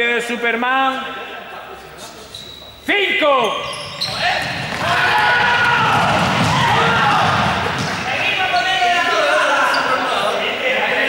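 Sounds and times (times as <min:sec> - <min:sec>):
young people shouting and chattering: 0:01.0 - 0:11.0
running footsteps on hall floor: 0:03.6 - 0:09.3.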